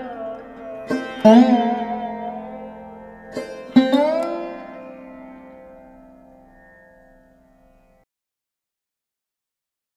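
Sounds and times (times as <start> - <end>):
plucked string instrument notes: 0.0 - 8.0.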